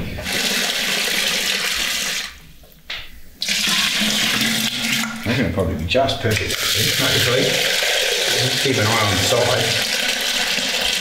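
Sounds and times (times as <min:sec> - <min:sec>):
tap water running into plastic jug: 0:03.4 - 0:05.3, 0:06.3 - 0:11.0.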